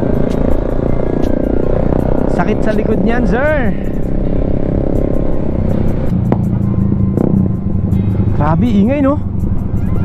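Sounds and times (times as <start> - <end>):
motorcycle engine droning: 0.0 - 10.0.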